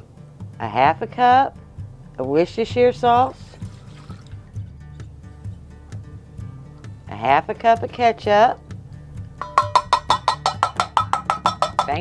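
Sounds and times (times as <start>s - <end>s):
cup tapping metal bowl rim: 9.4s - 12.0s.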